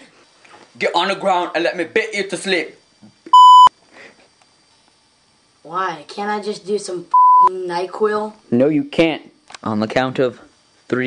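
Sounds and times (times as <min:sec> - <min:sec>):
censorship bleep: 0:03.3 - 0:03.7, 0:07.1 - 0:07.5.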